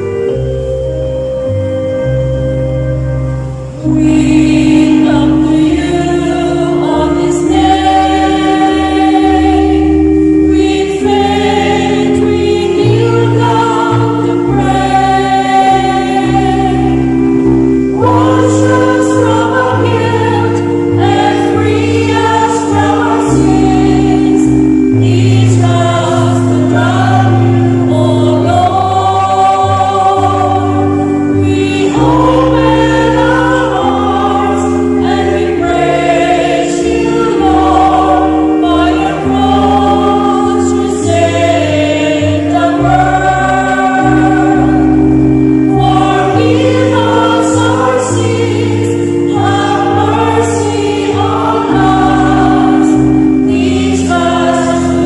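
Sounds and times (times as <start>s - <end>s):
choir singing a hymn: 0.0s - 55.0s
instrumental accompaniment: 0.0s - 55.0s.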